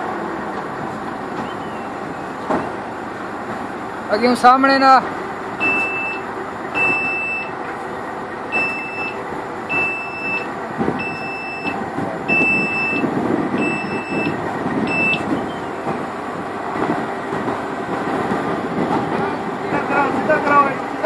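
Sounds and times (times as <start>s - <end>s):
diesel engine running: 0.0s - 21.0s
high warning beeps: 5.6s - 7.6s, 8.5s - 15.7s.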